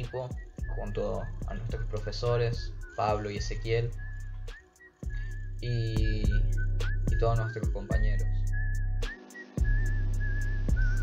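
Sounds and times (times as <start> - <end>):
bass line: 0.0 - 11.0
light beat: 0.0 - 11.0
whistled melody: 0.0 - 11.0.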